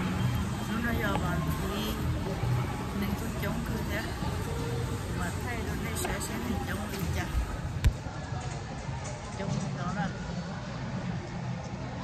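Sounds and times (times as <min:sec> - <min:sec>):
echoing murmur of voices: 0:00.0 - 0:12.0.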